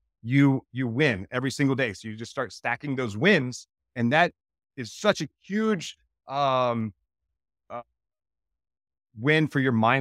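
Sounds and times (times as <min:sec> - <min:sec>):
man saying uh: 0:00.3 - 0:06.9.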